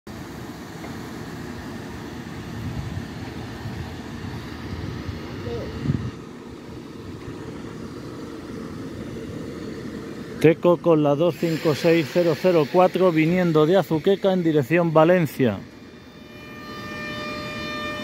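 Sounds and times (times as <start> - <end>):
locomotive rumbling: 0.6 - 18.0.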